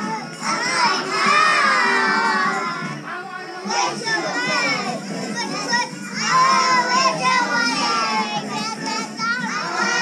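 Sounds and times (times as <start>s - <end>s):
adults talking: 0.0s - 10.0s.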